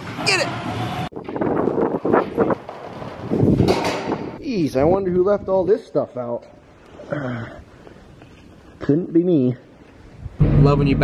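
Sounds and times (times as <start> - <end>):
wind buffeting microphone: 1.1 - 5.8.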